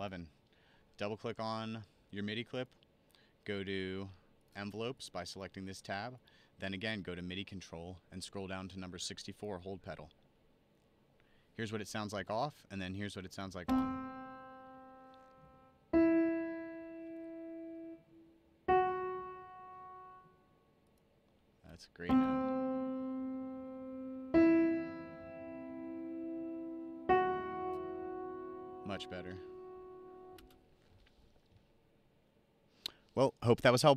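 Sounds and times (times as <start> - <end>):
single piano notes: 13.7 - 20.4, 22.0 - 30.6
sustained keyboard chord: 13.7 - 20.5, 22.0 - 30.6.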